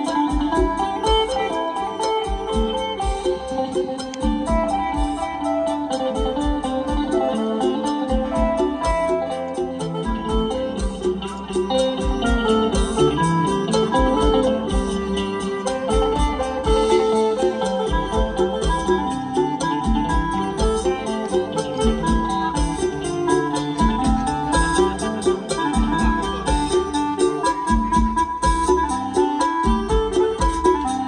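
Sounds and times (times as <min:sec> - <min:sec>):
drum kit fast beat: 0:00.0 - 0:31.0
electric guitar melody: 0:00.0 - 0:31.0
keyboard: 0:00.0 - 0:31.0.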